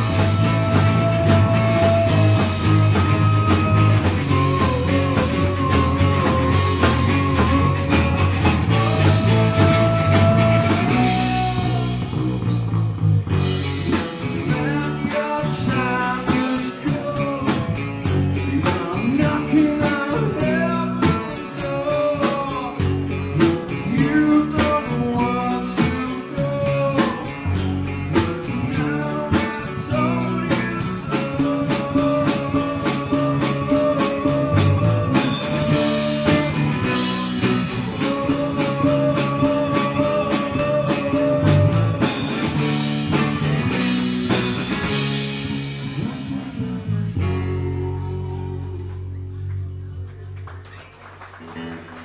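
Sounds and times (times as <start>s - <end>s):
sung vocals: 0.0s - 12.7s, 13.3s - 49.4s
drum kit beat: 0.0s - 48.2s
bass guitar: 0.0s - 52.0s
lead electric guitar: 0.0s - 52.0s.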